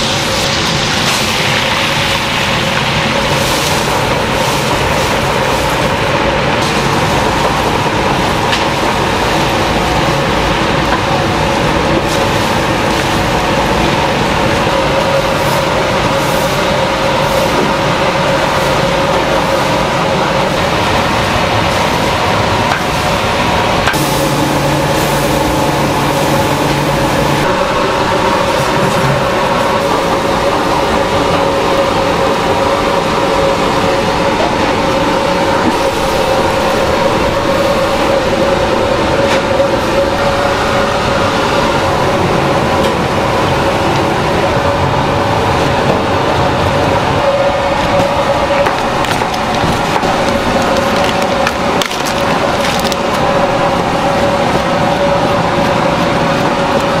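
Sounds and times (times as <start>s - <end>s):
commercial kitchen machinery roar: 0.0s - 57.0s
deeper hum: 0.0s - 57.0s
mechanical hum: 0.0s - 57.0s.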